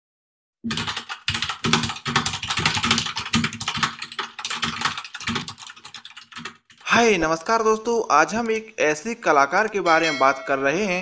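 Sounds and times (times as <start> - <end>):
fast keyboard typing: 0.7 - 7.1.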